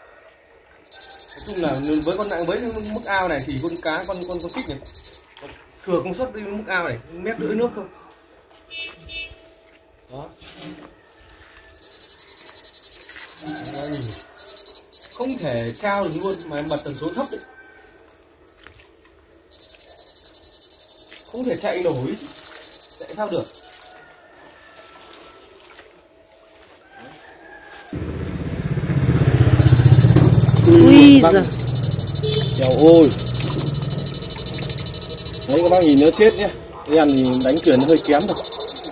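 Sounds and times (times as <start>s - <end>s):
high whine: 28.0s - 38.9s
high pulsing electric buzz: 28.5s - 36.3s.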